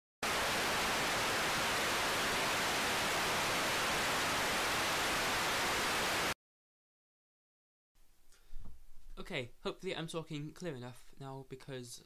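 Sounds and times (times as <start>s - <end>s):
television static hiss: 0.3s - 6.3s.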